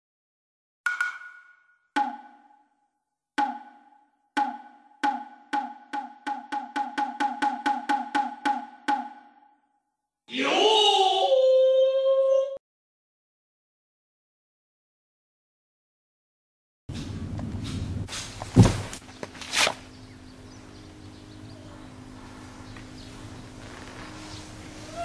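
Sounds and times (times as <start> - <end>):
ringing percussion hits: 0.9 - 2.6.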